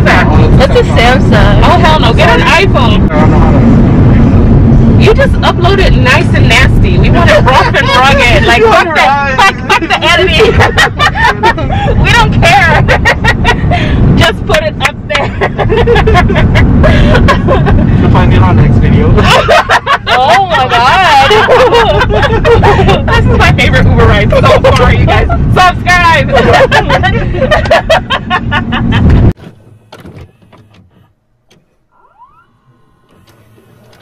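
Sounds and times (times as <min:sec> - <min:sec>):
passengers talking: 0:00.0 - 0:29.4
road rumble inside car: 0:00.0 - 0:34.0.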